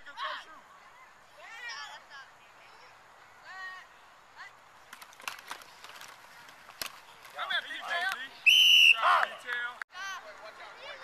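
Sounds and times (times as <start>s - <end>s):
voices shouting: 7.2s - 9.7s
whistle blast: 8.4s - 9.1s.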